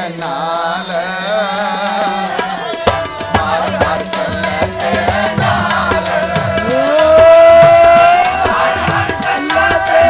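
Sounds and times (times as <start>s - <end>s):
harmonium: 0.0s - 10.0s
voices singing: 0.0s - 10.0s
tabla beat: 1.3s - 10.0s.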